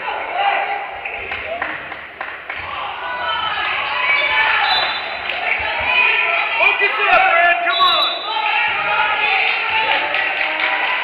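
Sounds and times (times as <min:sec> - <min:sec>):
overlapping voices in gym: 0:00.0 - 0:11.0.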